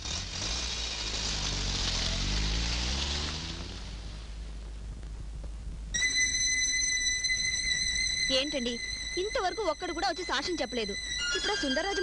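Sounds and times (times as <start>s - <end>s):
car engine accelerating: 0.0s - 5.5s
road and wind noise hiss: 0.0s - 9.4s.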